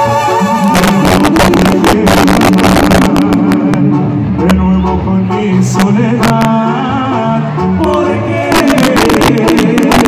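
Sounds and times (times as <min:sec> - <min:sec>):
tuba and brass low notes: 0:00.0 - 0:10.0.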